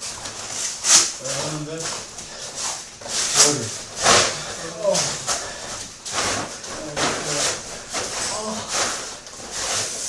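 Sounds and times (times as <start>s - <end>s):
plastic tarp rustling underfoot: 0.0s - 10.0s.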